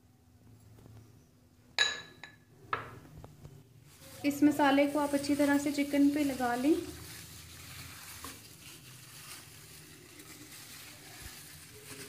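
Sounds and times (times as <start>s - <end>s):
glass bowl knocking on glass: 1.8s - 2.9s
glass clink: 1.8s - 2.9s.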